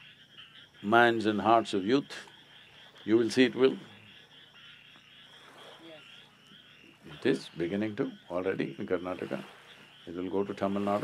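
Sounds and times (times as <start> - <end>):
frogs trilling: 0.0 - 11.0.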